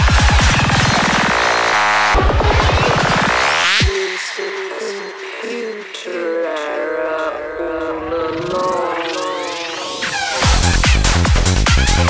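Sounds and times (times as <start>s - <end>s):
broken synth line: 0.0s - 5.0s.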